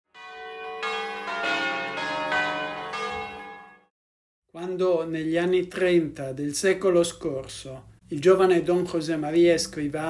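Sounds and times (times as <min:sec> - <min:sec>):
bells ringing: 0:00.1 - 0:03.9.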